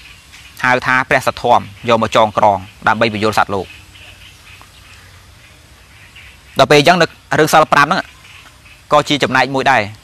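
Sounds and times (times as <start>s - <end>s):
low background hiss: 0.0s - 10.0s.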